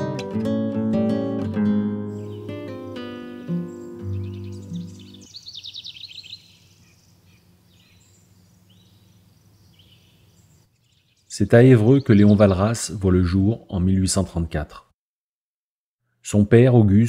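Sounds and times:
acoustic guitar music: 0.0s - 5.3s
bird trilling and chirping: 2.1s - 2.8s, 3.5s - 11.3s.

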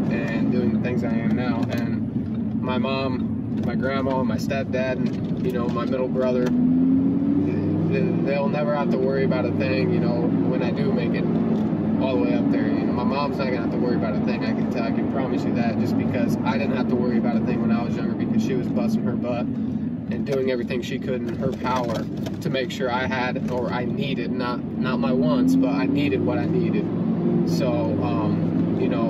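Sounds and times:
people talking: 0.0s - 2.0s, 2.6s - 6.5s, 7.5s - 11.2s, 12.0s - 19.4s, 20.1s - 26.8s, 27.5s - 29.0s
car engine and road noise: 0.0s - 29.0s.

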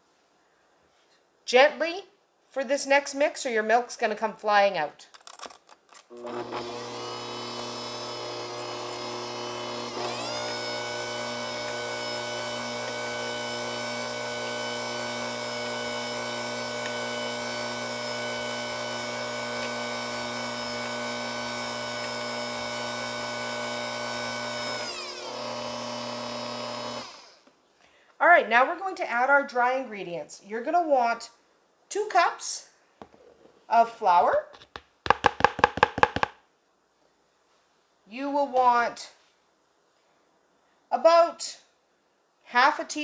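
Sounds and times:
electric mixer motor whining: 6.2s - 27.4s.

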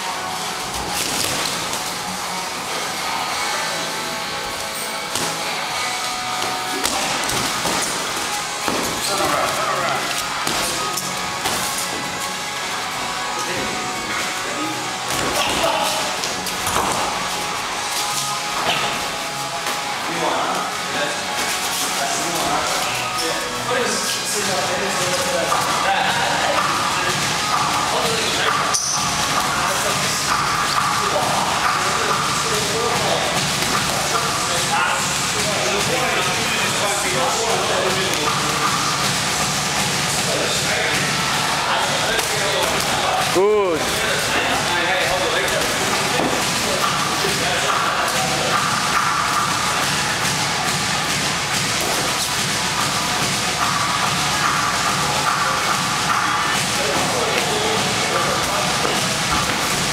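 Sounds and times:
music playing: 0.0s - 59.9s
voices: 2.1s - 59.9s
boxing gloves thudding: 6.4s - 9.0s.

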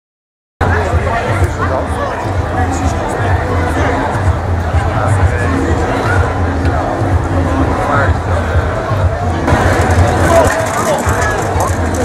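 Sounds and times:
crowd chatter: 0.6s - 12.0s.

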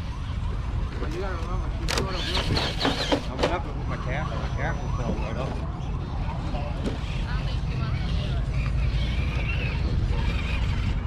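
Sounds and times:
people talking indistinctly: 0.9s - 11.0s.

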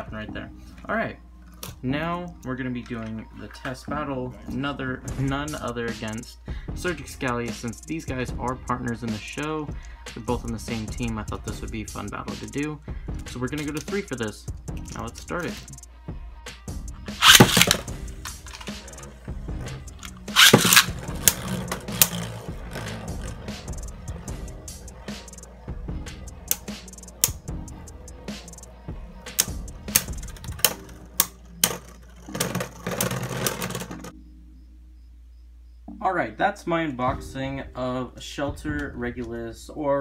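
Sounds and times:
spinning tops clashing: 17.2s - 19.2s, 19.9s - 25.5s, 26.1s - 28.7s, 29.3s - 34.1s
spinning tops launched: 17.2s - 19.2s, 19.9s - 25.5s, 26.1s - 28.7s.

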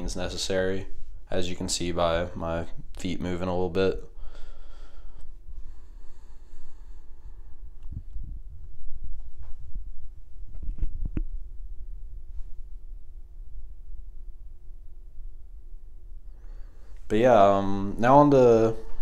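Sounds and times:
low steady rumble: 0.0s - 19.0s.

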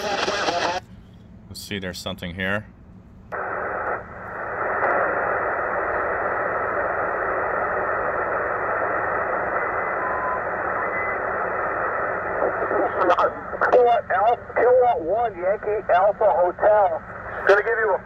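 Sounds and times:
radio voice: 0.0s - 0.8s, 11.9s - 18.0s
radio band noise hiss: 0.0s - 0.9s, 3.3s - 18.0s.

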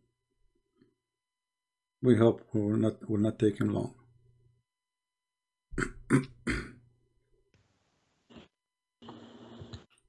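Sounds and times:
person coughing: 5.8s - 6.8s.

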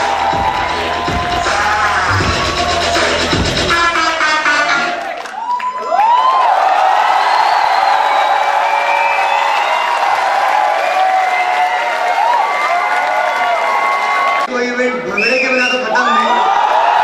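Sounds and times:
music: 0.0s - 4.4s
audience cheering and applauding: 0.0s - 14.6s, 15.9s - 17.0s.

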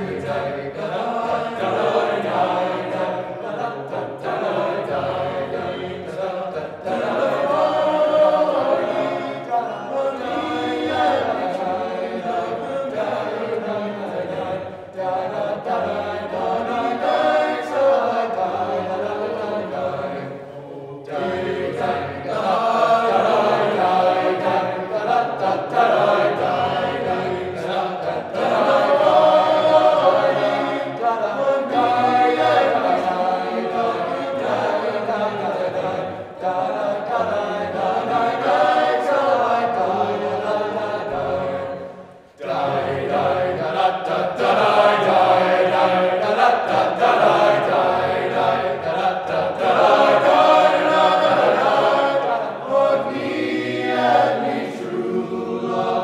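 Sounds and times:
boys choir singing: 0.0s - 56.0s.

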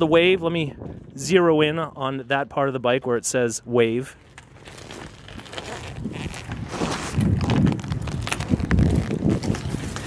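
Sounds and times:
wind buffeting microphone: 0.0s - 2.0s, 5.2s - 10.0s.

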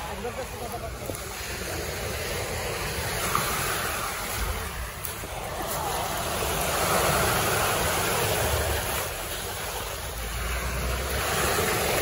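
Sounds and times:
small waves washing up beach: 0.0s - 12.0s.

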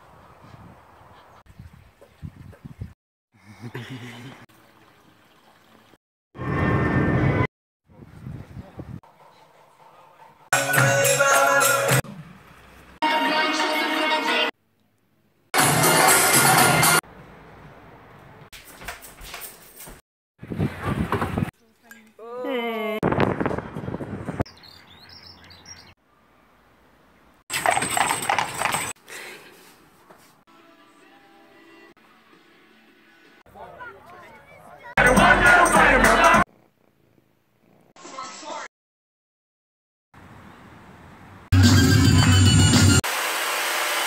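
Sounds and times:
small birds chirping: 0.2s - 3.0s, 24.5s - 26.0s
music with heavy bass: 35.0s - 36.4s
hair dryer blowing: 43.0s - 44.0s.

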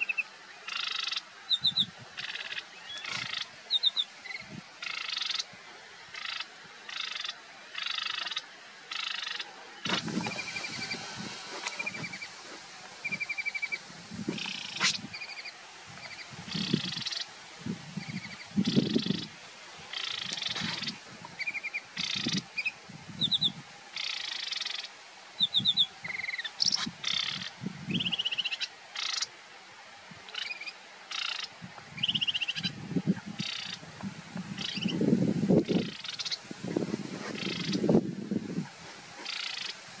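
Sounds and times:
warbler singing with trills: 0.0s - 5.5s, 6.1s - 12.4s, 13.0s - 17.3s, 19.9s - 29.3s, 30.4s - 33.8s, 34.5s - 35.0s, 35.6s - 36.5s, 37.4s - 38.0s.

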